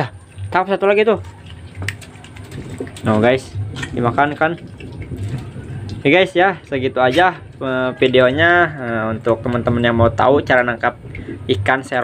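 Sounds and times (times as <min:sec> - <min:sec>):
water sloshing in a plastic tub: 0:00.0 - 0:12.0.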